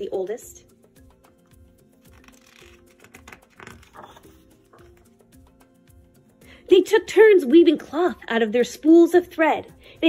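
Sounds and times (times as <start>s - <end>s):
soft background music: 0.0s - 10.0s
book pages rustling: 1.5s - 5.4s.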